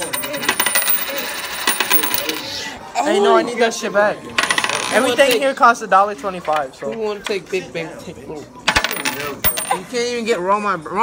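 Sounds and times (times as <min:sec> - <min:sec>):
coin clinking on a tabletop: 0:00.0 - 0:02.5, 0:04.4 - 0:05.4, 0:08.7 - 0:09.9.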